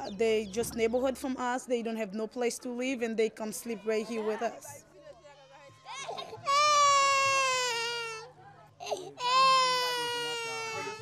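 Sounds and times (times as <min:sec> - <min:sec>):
baby crying: 0:05.9 - 0:11.0.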